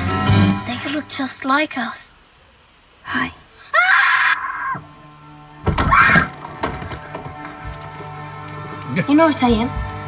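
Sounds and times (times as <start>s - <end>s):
boy screaming: 3.6s - 4.8s, 5.8s - 6.3s.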